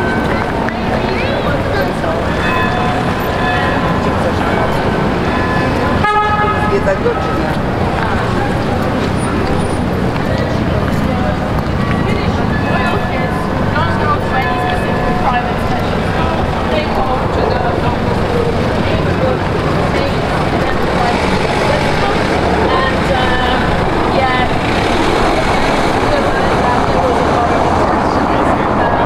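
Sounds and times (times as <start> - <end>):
crowd chatter: 0.0 - 29.0
traffic rumble: 0.0 - 29.0.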